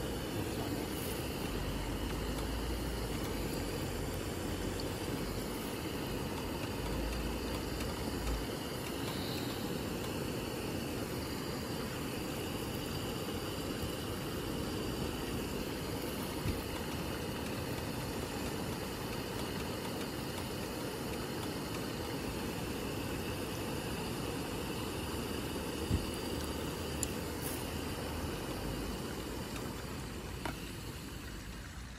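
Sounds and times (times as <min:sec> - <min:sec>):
gas burner flame rumble: 0:00.0 - 0:31.9.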